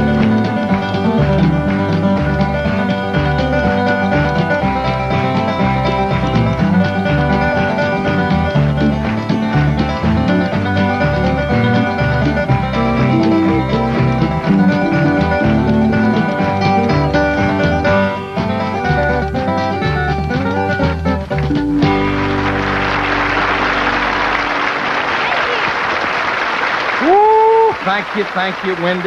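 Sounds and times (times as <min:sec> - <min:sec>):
resonator guitar picking lead: 0:00.0 - 0:25.3
bass line: 0:00.0 - 0:25.6
strummed acoustic guitars: 0:00.0 - 0:25.7.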